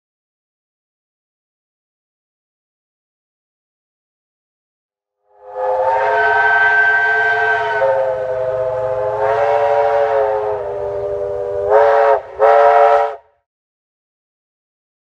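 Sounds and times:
steam locomotive whistle: 5.2 - 13.4.

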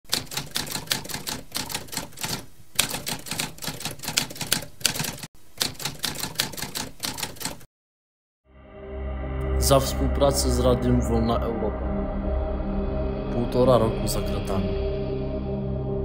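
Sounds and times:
typewriter keys clacking: 0.1 - 7.6.

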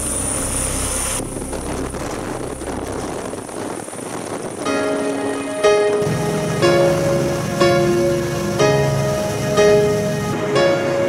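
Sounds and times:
helicopter rotor beat: 0.0 - 5.0, 6.0 - 11.0
high steady whine: 0.0 - 11.0.

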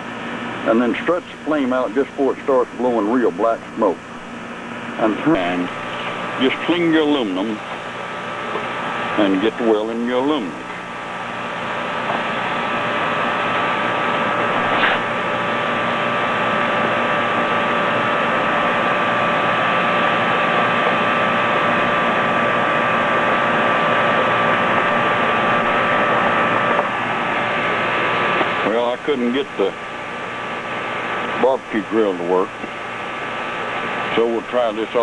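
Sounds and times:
gas burner hissing: 0.0 - 35.0.

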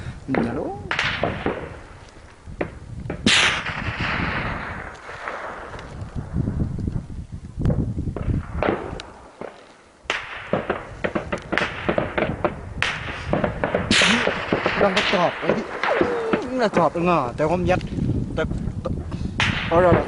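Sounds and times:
gunshots echoing: 0.3 - 2.0, 2.6 - 5.9, 8.2 - 17.2, 19.4 - 20.0.

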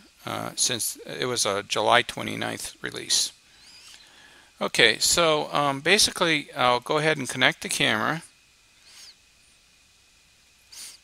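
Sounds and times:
faint high hum: 0.0 - 11.0
breathy hiss: 2.8 - 5.8, 8.7 - 9.6, 10.6 - 11.0.

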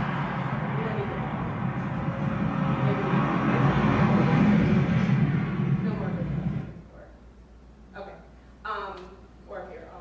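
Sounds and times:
car road and engine noise: 0.0 - 6.8.

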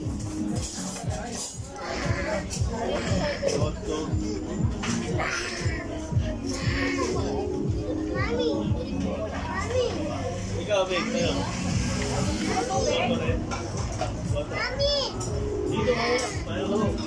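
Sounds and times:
background music: 0.0 - 17.0
table chatter: 0.0 - 17.0
toddler calling out: 1.8 - 3.6, 5.0 - 7.6.

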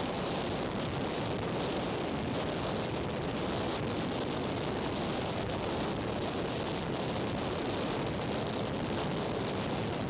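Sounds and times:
rushing wind and water: 0.0 - 10.0.

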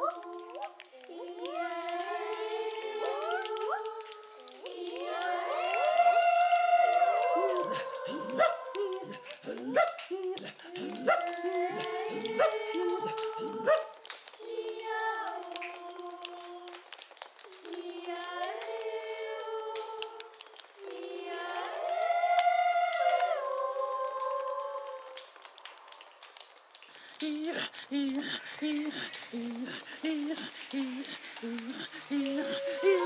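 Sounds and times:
children's choir singing: 0.0 - 16.9, 17.5 - 25.3, 27.2 - 33.0
choppy rhythmic vocal sounds: 0.0 - 33.0.

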